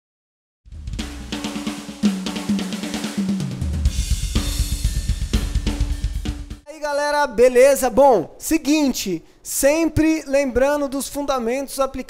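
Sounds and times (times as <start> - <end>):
rapid bass drum strokes: 0.7 - 6.6
drum fill: 0.7 - 6.7
cymbal wash: 3.9 - 6.5.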